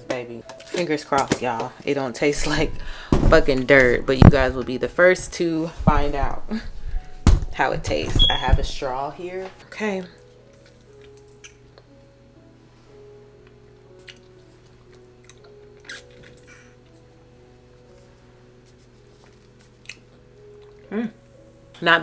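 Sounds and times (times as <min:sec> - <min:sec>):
quiet background music: 0:00.0 - 0:22.0.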